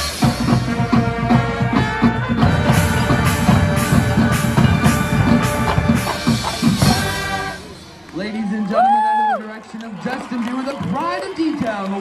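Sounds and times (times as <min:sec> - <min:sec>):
rapid drum strokes: 0:00.0 - 0:08.1
marching band playing: 0:00.0 - 0:08.8.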